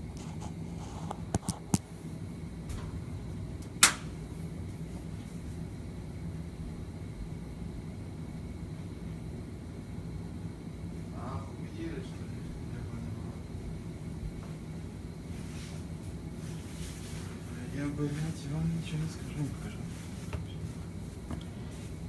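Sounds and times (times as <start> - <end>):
low kitchen hum: 0.0 - 22.0.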